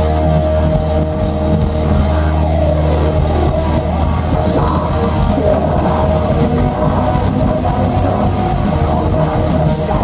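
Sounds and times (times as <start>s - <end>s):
bass guitar: 0.0s - 10.0s
distorted electric guitars: 0.0s - 10.0s
drums: 0.0s - 10.0s.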